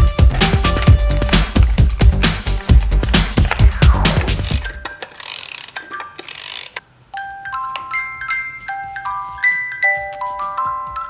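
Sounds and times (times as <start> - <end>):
background music: 0.0 - 4.9
music box dial ratcheting: 4.9 - 6.8
music box tinkling melody: 7.1 - 11.0.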